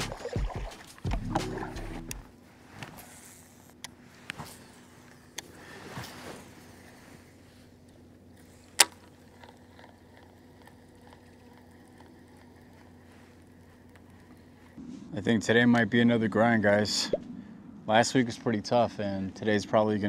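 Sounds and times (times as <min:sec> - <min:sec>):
reel whirring: 0:00.0 - 0:14.8
reel clicks: 0:07.8 - 0:14.8.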